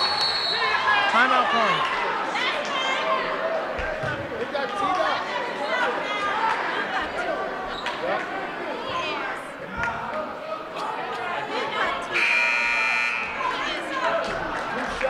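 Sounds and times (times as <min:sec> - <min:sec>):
crowd chatter: 0:00.0 - 0:15.0
scoreboard buzzer: 0:12.2 - 0:13.4.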